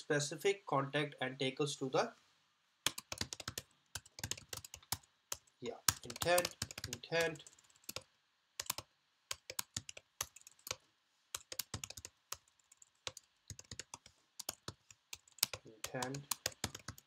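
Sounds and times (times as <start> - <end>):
typing on computer keyboard: 2.9 - 10.8, 11.4 - 17.0.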